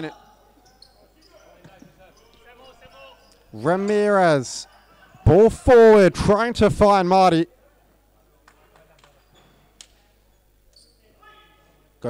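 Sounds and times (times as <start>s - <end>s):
shoes squeaking on wooden floor: 9.2s - 9.7s.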